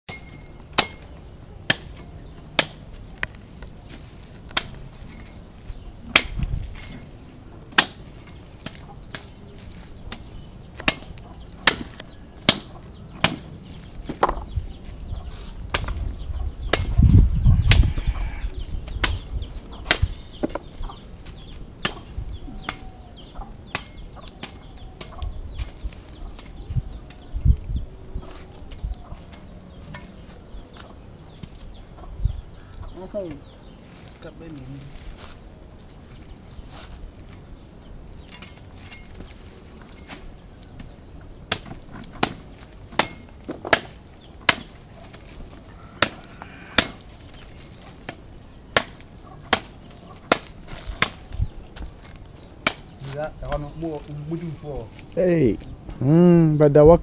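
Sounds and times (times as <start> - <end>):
blade chopping fruit bunch: 10.1 - 13.5, 41.5 - 45.4, 48.0 - 51.3
fruits snapping off: 40.1 - 51.3.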